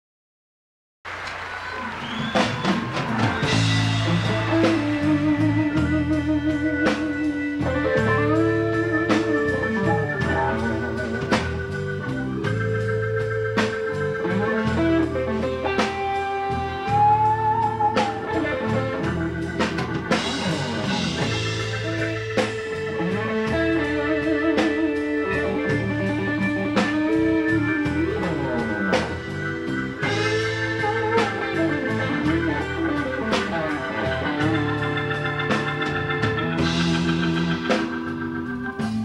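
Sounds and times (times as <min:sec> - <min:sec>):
live blues band playing: 0:01.3 - 0:39.0
organ-style keyboard chords: 0:01.6 - 0:39.0.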